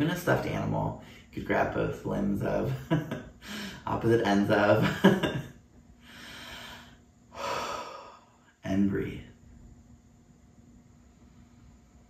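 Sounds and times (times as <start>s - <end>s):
person laughing: 2.7s - 3.8s, 4.8s - 5.6s
long breaths: 3.4s - 3.8s, 6.0s - 8.6s.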